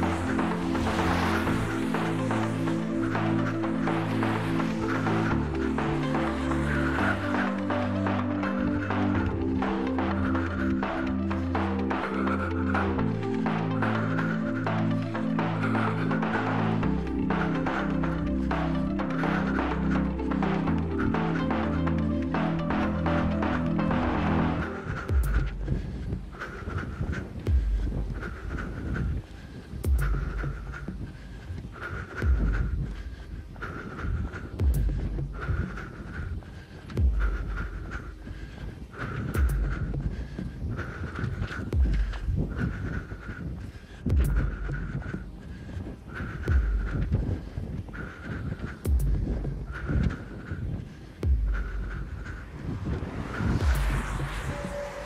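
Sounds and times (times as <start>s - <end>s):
person breathing heavily: 0.0s - 55.0s
running footsteps on pavement: 0.0s - 55.0s.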